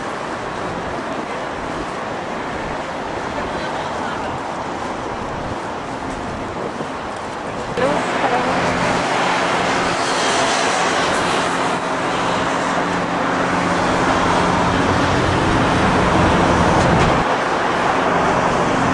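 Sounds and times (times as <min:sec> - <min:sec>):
low engine drone: 0:00.0 - 0:18.9
passing cars: 0:00.0 - 0:18.9.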